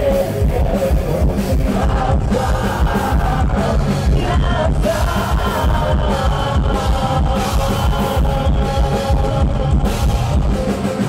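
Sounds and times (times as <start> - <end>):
drums steady beat: 0.0 - 11.0
guitars holding long notes: 0.0 - 11.0.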